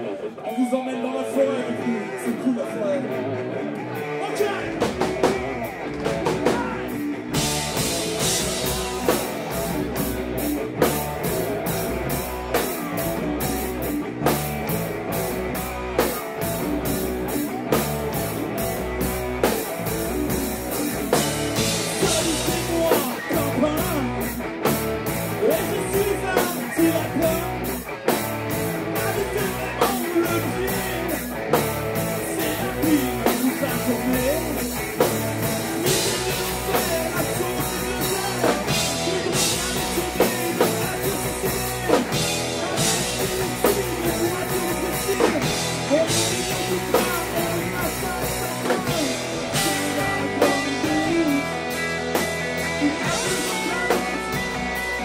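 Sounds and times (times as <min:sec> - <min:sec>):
electric guitars: 0:00.0 - 0:55.0
drums and cymbals: 0:04.7 - 0:55.0.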